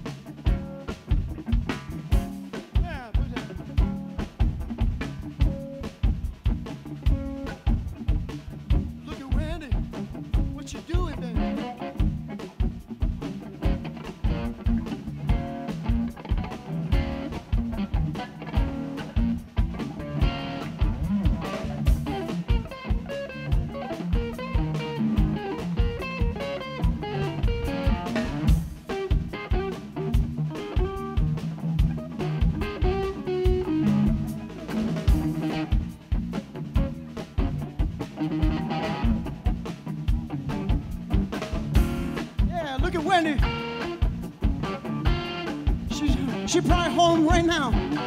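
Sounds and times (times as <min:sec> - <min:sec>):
drum kit beat: 0:00.0 - 0:48.0
electric guitar melody: 0:00.0 - 0:48.0.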